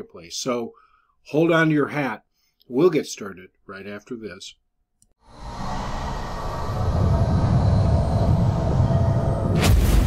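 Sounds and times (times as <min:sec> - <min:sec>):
rumbling whoosh: 0:05.2 - 0:10.0.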